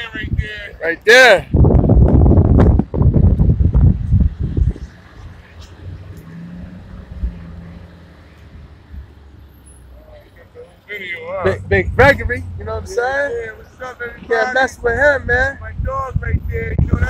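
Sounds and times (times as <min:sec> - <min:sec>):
motor vehicle rumble: 0:00.0 - 0:17.0.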